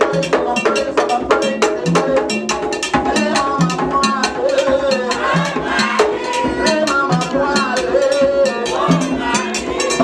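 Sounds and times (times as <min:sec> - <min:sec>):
fast drumming: 0:00.0 - 0:10.0.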